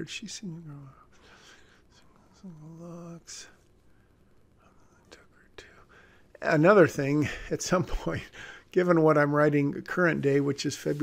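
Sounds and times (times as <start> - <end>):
man whispering: 0.0 - 3.6, 4.6 - 7.3.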